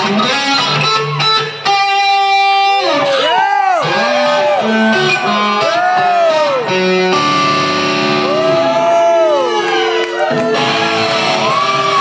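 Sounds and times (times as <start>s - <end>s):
electric guitar gliding notes: 0.0s - 12.0s.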